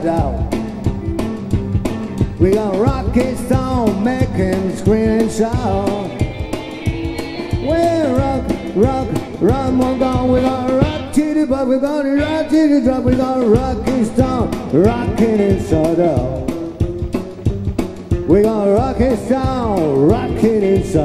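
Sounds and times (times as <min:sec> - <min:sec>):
electric guitar: 0:00.0 - 0:11.4, 0:12.0 - 0:21.0
drum kit beat: 0:00.0 - 0:21.0
lead melody bending in pitch: 0:05.7 - 0:11.2.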